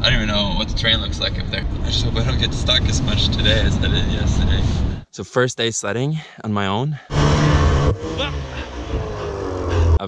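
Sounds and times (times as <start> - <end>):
snowmobile engine labouring: 7.1 - 10.0.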